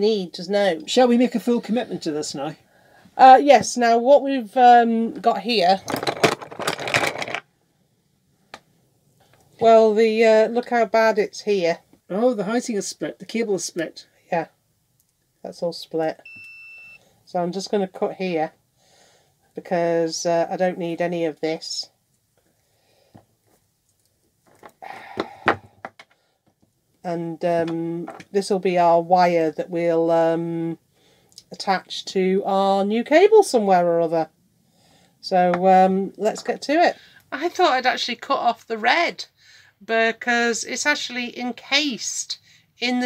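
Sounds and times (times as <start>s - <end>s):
cable and tools rustling: 5.6s - 7.5s, 23.1s - 26.8s.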